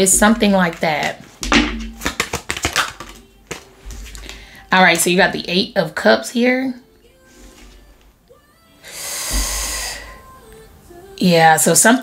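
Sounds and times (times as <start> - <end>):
cards shuffling with crisp flicks: 1.0 - 4.4.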